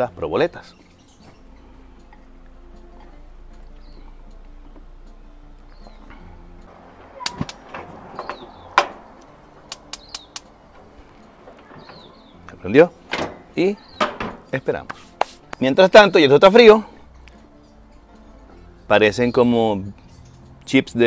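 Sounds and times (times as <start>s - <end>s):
small birds chirping: 0.0s - 4.5s, 5.6s - 21.0s
knocks: 6.8s - 14.5s
gas grill igniter clicking: 8.8s - 10.5s.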